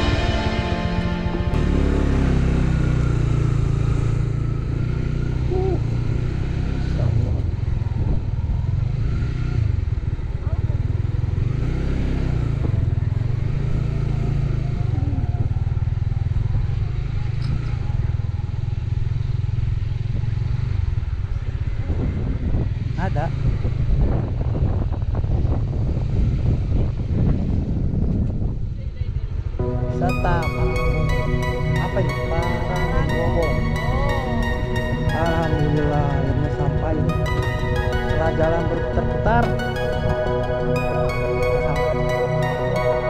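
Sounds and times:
motorcycle engine rumbling: 0.0s - 43.0s.

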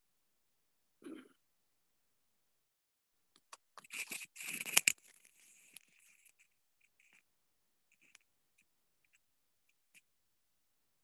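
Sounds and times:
faint scattered crackles: 3.3s - 7.3s, 7.9s - 10.1s
rustling crackling noise: 3.4s - 7.3s, 7.9s - 10.0s.

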